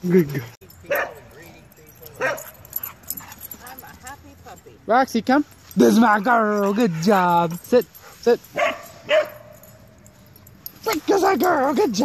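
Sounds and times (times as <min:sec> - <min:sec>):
dog barking: 0:00.9 - 0:01.2, 0:02.2 - 0:03.4, 0:08.6 - 0:09.7.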